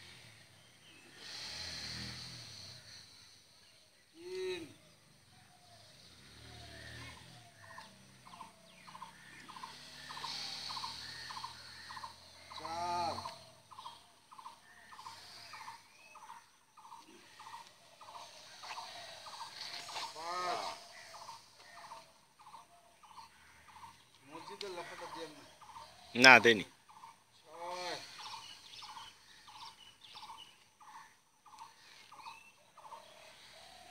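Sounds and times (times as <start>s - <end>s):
loud long bird calls: 0.0s - 33.9s.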